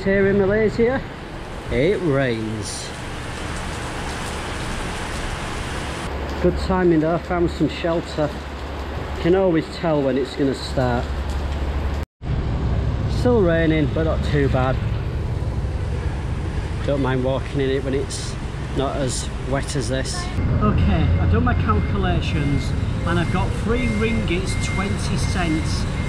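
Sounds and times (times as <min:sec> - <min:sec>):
heavy rain on pavement: 0:01.1 - 0:12.0, 0:22.6 - 0:26.0.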